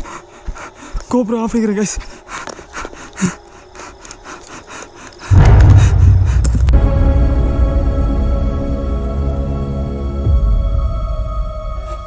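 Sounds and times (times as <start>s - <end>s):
deep rumbling boom: 5.3s - 8.6s
eerie horror music chord: 5.3s - 12.0s.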